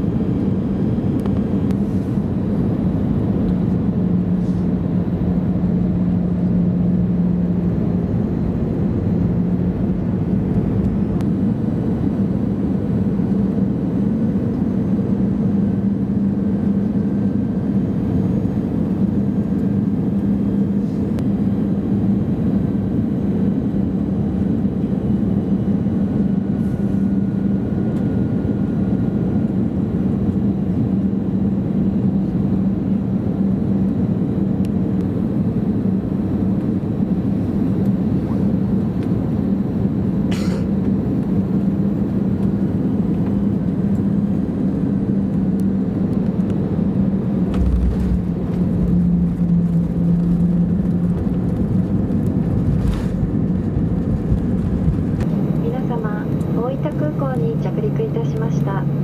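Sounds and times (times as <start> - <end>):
airliner cabin engine and airflow noise: 0.0 - 59.0
steady low hum: 0.0 - 59.0.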